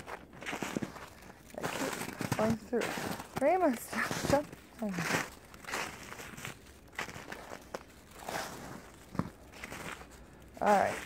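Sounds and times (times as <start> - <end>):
footsteps crunching in icy snow: 0.0 - 11.0.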